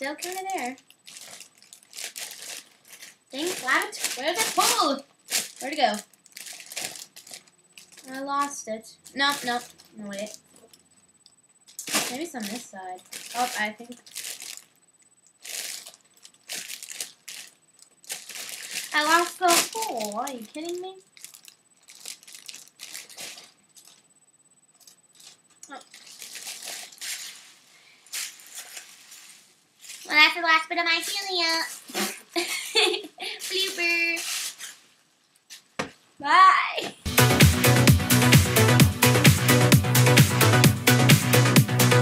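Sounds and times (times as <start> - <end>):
foil balloons crinkling: 0.0 - 11.1, 11.7 - 24.1, 24.7 - 35.8
girl's voice high held tone: 18.9 - 21.0, 30.1 - 31.8, 33.2 - 34.2, 36.2 - 37.1.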